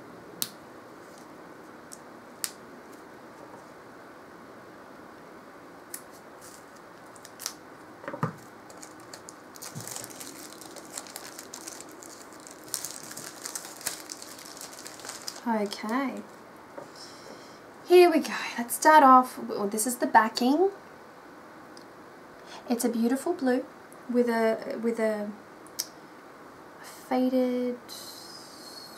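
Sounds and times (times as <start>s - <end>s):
packaging rustling and crinkling: 6.4s - 7.6s, 8.2s - 16.4s.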